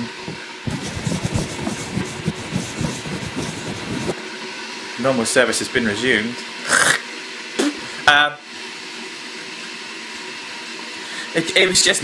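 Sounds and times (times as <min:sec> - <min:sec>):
fabric rubbing on camera: 0:00.7 - 0:04.2.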